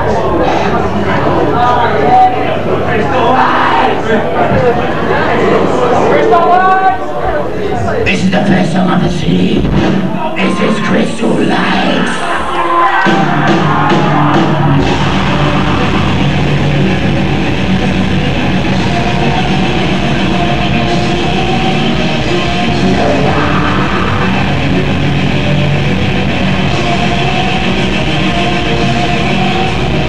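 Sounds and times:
loud guitars: 0.0s - 30.0s
fast drumming: 9.1s - 12.3s, 13.0s - 30.0s.

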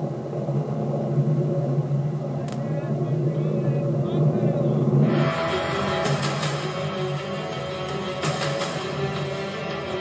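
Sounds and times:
rocket motor rumble: 0.0s - 9.2s.

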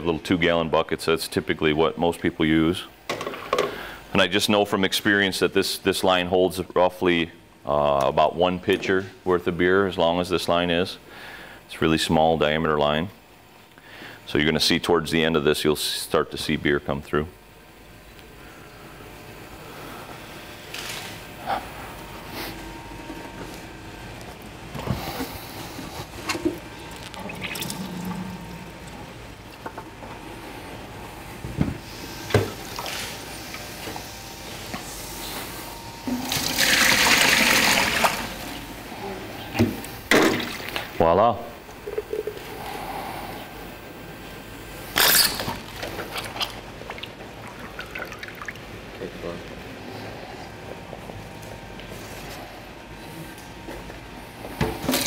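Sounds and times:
beer running from tap: 27.1s - 29.0s, 36.1s - 38.6s, 46.9s - 49.0s.

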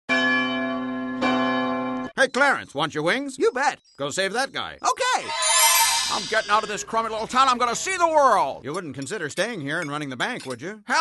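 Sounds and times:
bell ringing: 5.3s - 7.9s.

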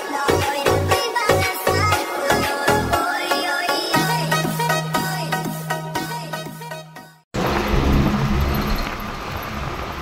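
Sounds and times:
vehicle engine and road rumble: 7.4s - 10.0s.

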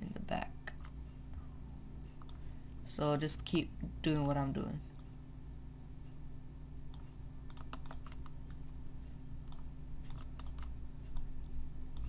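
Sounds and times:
steady low hum: 0.0s - 12.0s
computer keys clicking: 2.2s - 2.4s, 6.9s - 8.6s, 9.4s - 11.3s.

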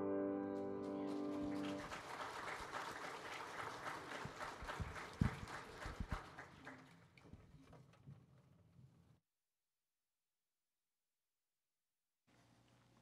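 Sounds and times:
congregation applauding: 0.5s - 7.4s.

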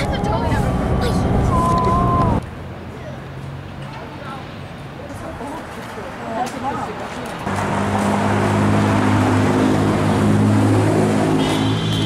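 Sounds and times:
vehicle engine humming: 0.0s - 6.1s, 6.8s - 12.0s.

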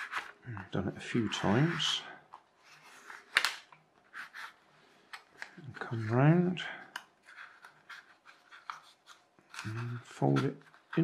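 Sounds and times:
paper rustling: 0.0s - 6.5s, 7.2s - 11.0s.

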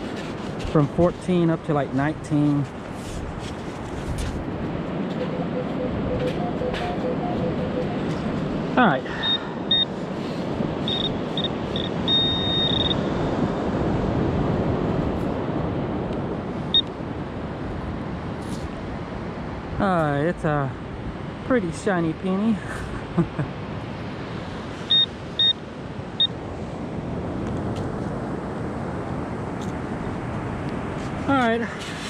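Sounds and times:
beach wind: 0.0s - 32.0s
metal detector beeping: 5.2s - 8.4s, 9.1s - 10.0s, 10.8s - 13.0s, 24.9s - 25.6s.

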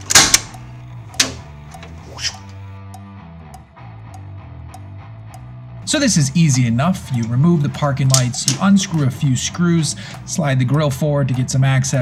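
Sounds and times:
switch clicking: 0.0s - 11.5s
background music: 0.0s - 12.0s.

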